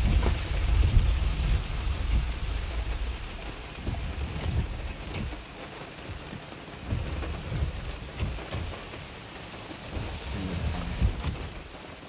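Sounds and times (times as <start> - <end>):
low rumbles: 0.0 - 5.6, 9.8 - 11.7
rain on car roof: 0.0 - 12.0.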